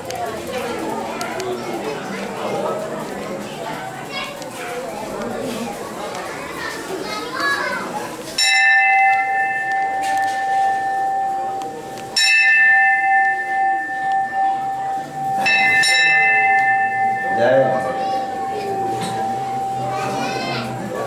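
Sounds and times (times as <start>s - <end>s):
bell ringing: 8.4s - 21.0s.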